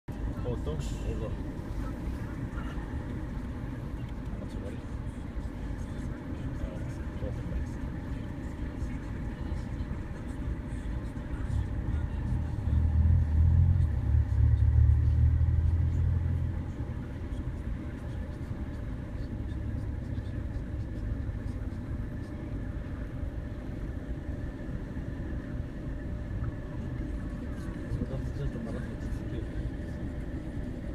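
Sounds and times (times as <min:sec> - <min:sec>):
low outdoor rumble: 0:00.1 - 0:30.9.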